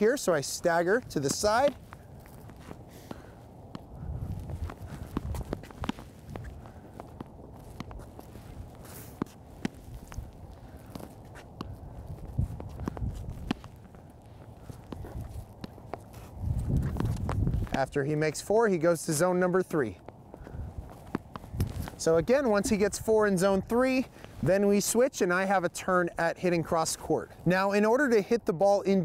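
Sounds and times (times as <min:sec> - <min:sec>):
shoes scuffing on court: 0:00.1 - 0:25.6
paddles hitting ball: 0:00.7 - 0:18.0, 0:20.0 - 0:22.9
ball bouncing on hard court: 0:14.7 - 0:16.1.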